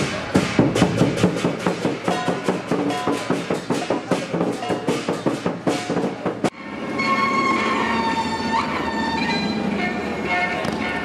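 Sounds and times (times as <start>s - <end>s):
drum and cymbal beats: 0.0s - 6.6s.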